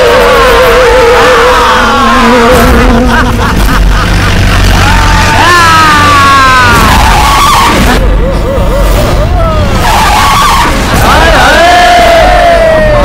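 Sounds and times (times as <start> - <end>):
tyres squealing and skidding: 0.0 - 13.0.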